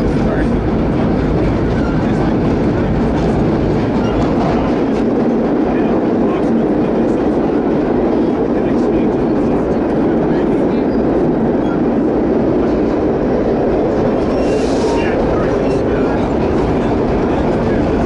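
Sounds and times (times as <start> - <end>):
subway train rumbling in tunnel: 0.0 - 18.0.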